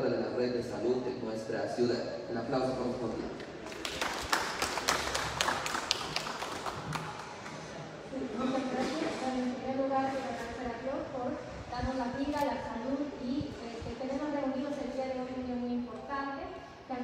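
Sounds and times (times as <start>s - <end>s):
sparse applause: 3.6s - 7.9s.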